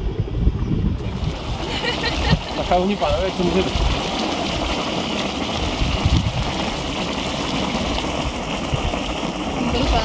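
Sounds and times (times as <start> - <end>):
hot spring bubbling and spattering: 0.3 - 10.0
rushing hiss of steaming water: 1.0 - 10.0.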